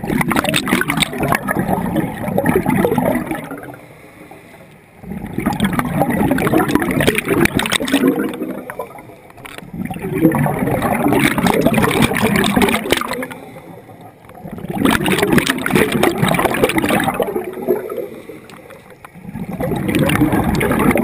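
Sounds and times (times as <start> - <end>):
underwater regulator bubbles: 0.0 - 3.9, 5.0 - 21.0.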